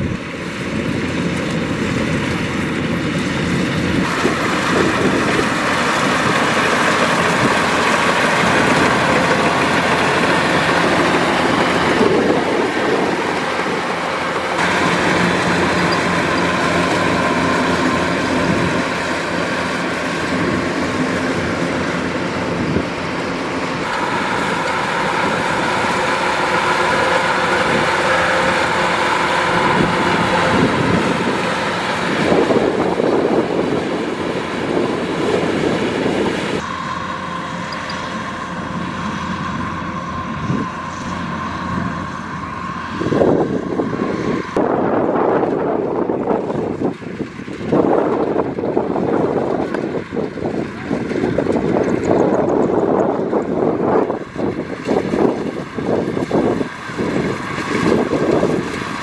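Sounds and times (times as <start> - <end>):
combine harvester drone: 0.0 - 59.0.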